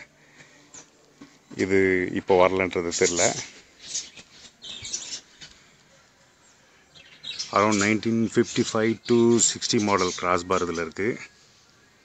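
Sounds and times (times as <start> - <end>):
high bird chirp: 2.8 - 12.0.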